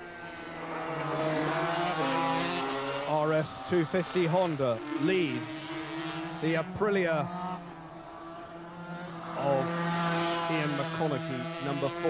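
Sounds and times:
racing motorcycles at high revs: 0:00.0 - 0:12.0.

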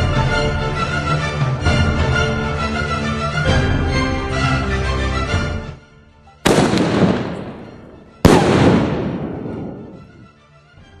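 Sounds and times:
firework bangs: 0:06.5 - 0:10.2.

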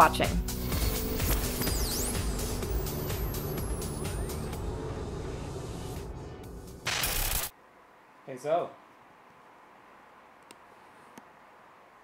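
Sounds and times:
high tone sliding downward: 0:00.7 - 0:06.6
steady low rumble: 0:02.3 - 0:06.9.

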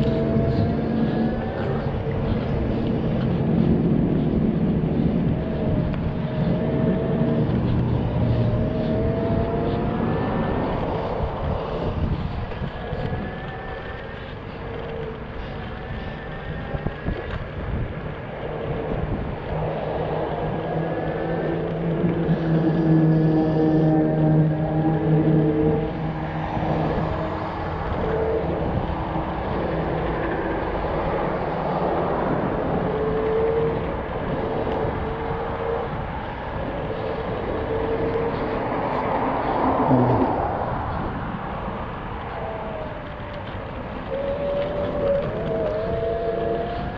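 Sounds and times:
electric motor whine: 0:00.0 - 0:40.3
road rumble: 0:00.0 - 0:46.9
wind buffeting microphone: 0:00.0 - 0:46.9.

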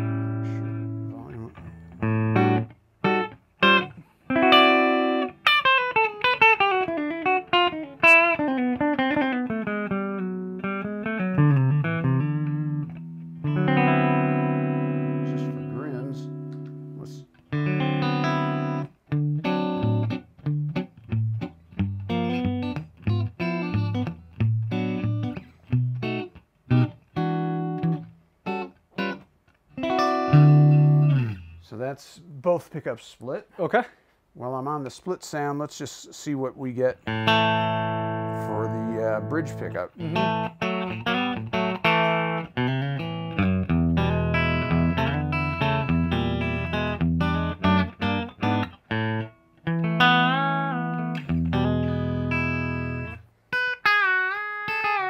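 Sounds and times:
electric guitar playing: 0:00.0 - 0:31.7, 0:37.0 - 0:55.0.

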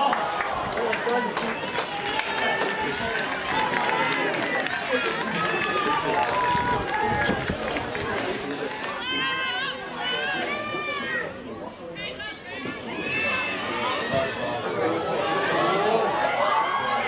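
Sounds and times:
players shouting: 0:00.0 - 0:17.0
spectators chatter: 0:00.0 - 0:17.0.

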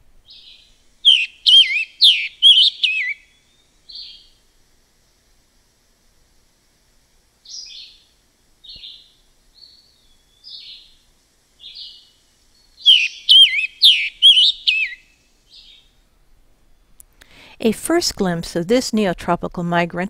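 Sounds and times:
bird whistled notes: 0:00.3 - 0:04.3, 0:12.6 - 0:15.8
bird song hoarse burry phrases: 0:01.0 - 0:03.2, 0:12.8 - 0:15.0.

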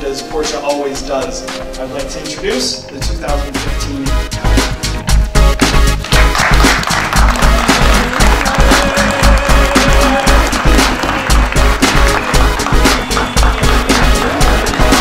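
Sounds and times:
music with bass beat: 0:01.5 - 0:15.0.

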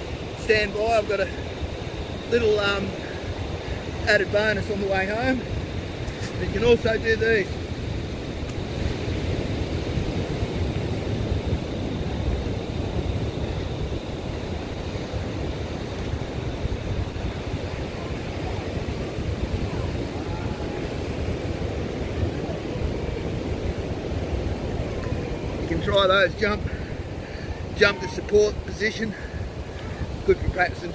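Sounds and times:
ocean surf breaking: 0:00.0 - 0:30.9
wind buffeting microphone: 0:00.0 - 0:30.9.

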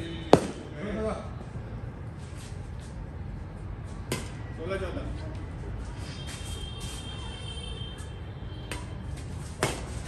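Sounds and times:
racket striking shuttlecock: 0:00.3 - 0:00.6, 0:08.6 - 0:10.0.

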